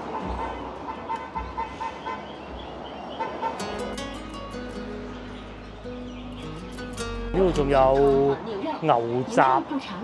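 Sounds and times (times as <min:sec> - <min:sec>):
street noise: 0:00.0 - 0:10.0
background music: 0:03.6 - 0:08.6.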